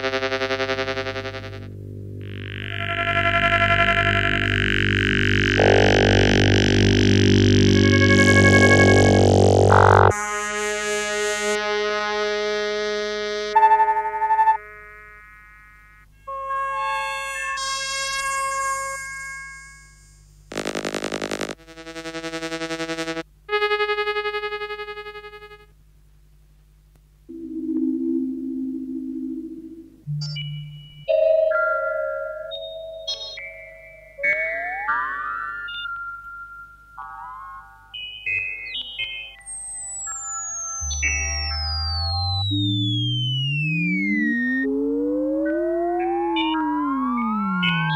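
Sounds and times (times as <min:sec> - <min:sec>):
low steady hum: 0:00.0 - 0:15.1, 0:20.2 - 0:31.4
electronic pitch glides: 0:00.0 - 0:19.8, 0:20.5 - 0:23.2, 0:27.3 - 0:36.6, 0:39.2 - 0:47.9
held electronic tones: 0:00.0 - 0:19.8, 0:20.5 - 0:25.7, 0:30.1 - 0:37.1, 0:38.3 - 0:47.9
buzzing pulsed tone: 0:00.0 - 0:25.7, 0:27.3 - 0:37.0, 0:38.3 - 0:47.9.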